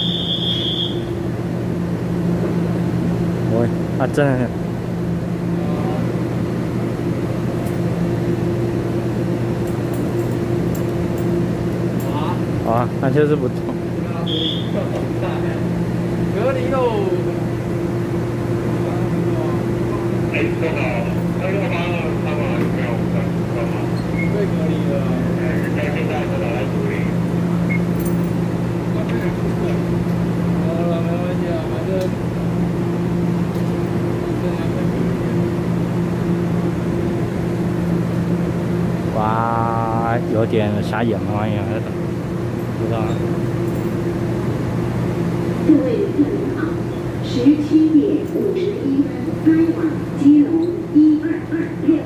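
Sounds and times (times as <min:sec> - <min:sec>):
electric train humming: 0:00.0 - 0:52.0.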